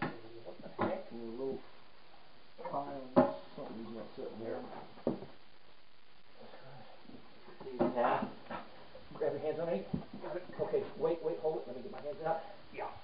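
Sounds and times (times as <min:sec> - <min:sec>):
men talking: 0:02.6 - 0:04.9, 0:06.5 - 0:12.6.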